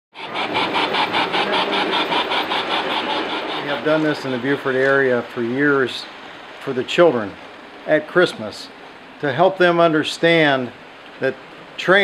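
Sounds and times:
model steam locomotive chuffing: 0:00.1 - 0:12.0.

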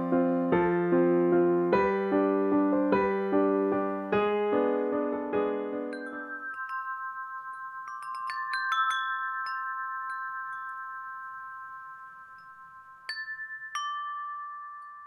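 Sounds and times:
chimes ringing: 0:05.8 - 0:15.0.

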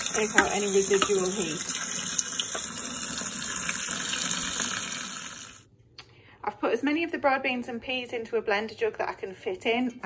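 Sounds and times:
tap water running into colander: 0:00.0 - 0:05.6.

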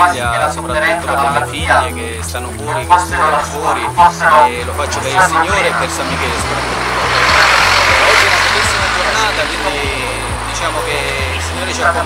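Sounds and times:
background music: 0:00.0 - 0:12.0
road vehicle passing: 0:00.0 - 0:12.0.

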